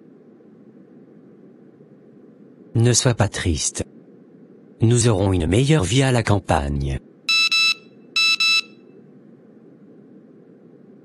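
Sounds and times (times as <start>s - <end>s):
faint low hum: 0.0s - 11.0s
electronic double beep: 7.3s - 8.8s.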